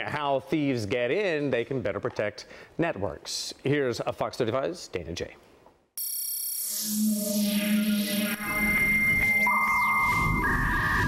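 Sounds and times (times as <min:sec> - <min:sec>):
high synthesized tone: 0:06.0 - 0:11.0
low buzzy synthesized tone: 0:06.0 - 0:11.0.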